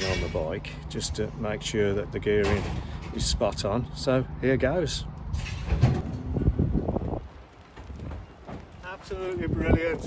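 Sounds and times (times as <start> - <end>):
wind buffeting microphone: 4.6 - 10.0.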